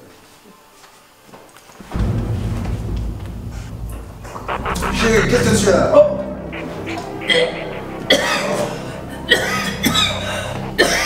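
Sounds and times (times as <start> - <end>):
background music: 1.9 - 11.0
woman coughing hard: 9.3 - 10.2, 10.8 - 11.0.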